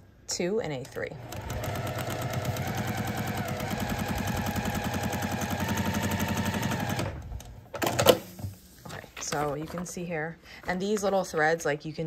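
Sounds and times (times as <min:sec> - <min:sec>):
electric sewing machine stitching: 0:01.2 - 0:07.4.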